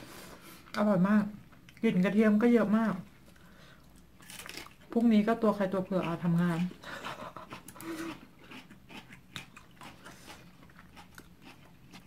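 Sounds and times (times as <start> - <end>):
chewing: 3.3 - 5.0, 5.8 - 12.0
person speaking: 4.9 - 6.8.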